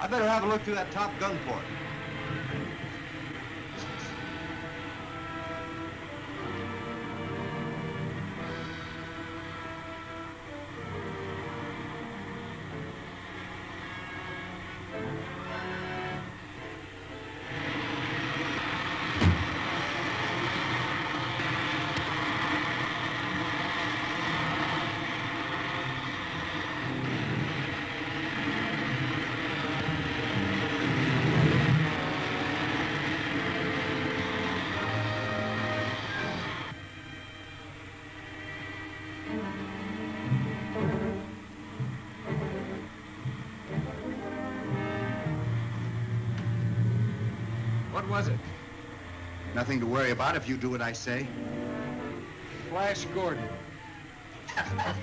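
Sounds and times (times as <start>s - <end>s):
dramatic orchestral music: 0.0s - 21.0s, 26.2s - 55.0s
sharp knock: 19.2s - 19.6s.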